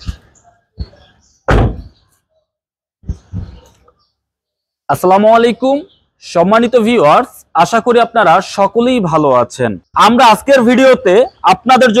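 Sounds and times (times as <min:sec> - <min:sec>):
sliding van door shutting with thud: 0:01.5 - 0:02.0.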